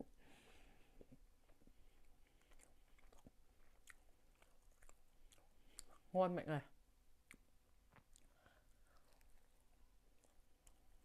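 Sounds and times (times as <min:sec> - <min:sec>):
faint chewing: 0:00.5 - 0:06.1, 0:07.2 - 0:11.0.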